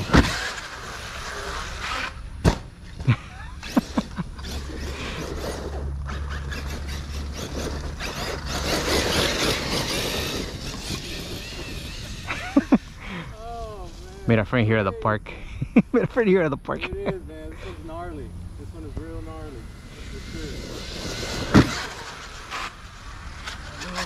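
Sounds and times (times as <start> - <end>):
rc truck motor whining: 0.0 - 2.4, 3.4 - 14.2, 18.0 - 24.0
tyres tearing through turf: 0.0 - 2.6, 3.7 - 14.3, 19.0 - 24.0.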